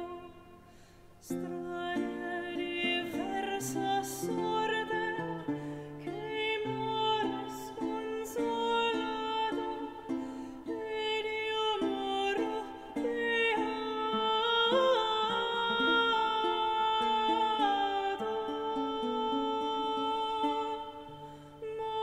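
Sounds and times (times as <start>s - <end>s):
lute: 0.0s - 22.0s
woman singing: 0.0s - 22.0s.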